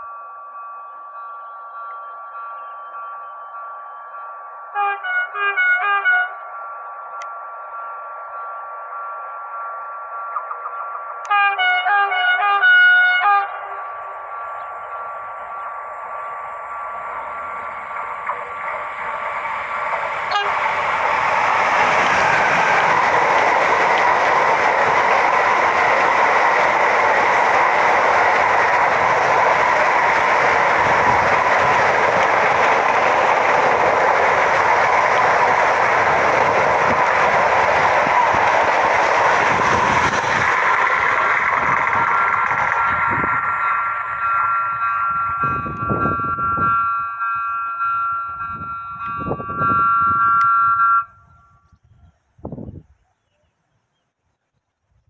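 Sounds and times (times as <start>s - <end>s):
train wheels rushing on rail: 12.4s - 50.8s.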